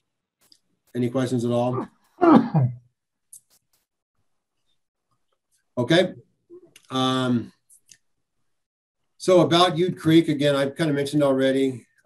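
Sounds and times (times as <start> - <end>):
person clearing throat: 2.2 - 2.8.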